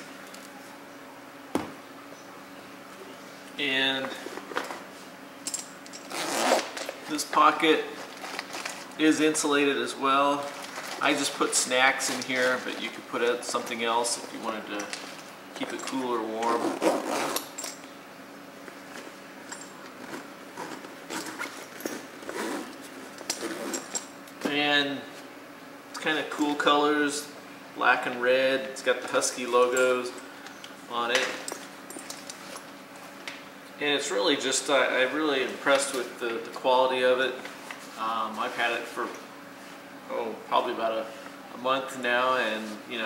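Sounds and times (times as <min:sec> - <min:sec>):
zipper being pulled: 0:06.0 - 0:06.8, 0:16.5 - 0:17.5, 0:20.6 - 0:22.8.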